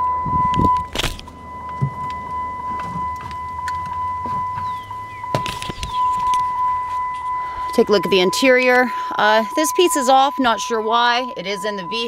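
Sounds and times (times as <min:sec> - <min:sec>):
car warning chime: 0:00.0 - 0:12.0
hood release clunks: 0:00.8 - 0:06.6.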